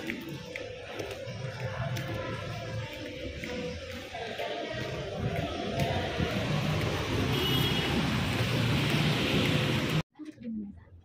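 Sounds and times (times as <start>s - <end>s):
traffic noise: 0.0s - 10.5s
heavy rain on a street: 6.1s - 10.0s.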